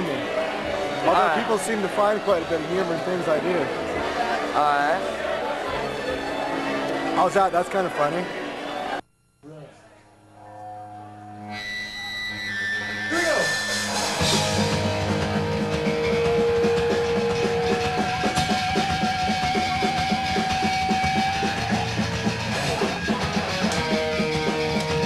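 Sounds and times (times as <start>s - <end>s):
punk rock drums and guitars: 13.7s - 25.0s.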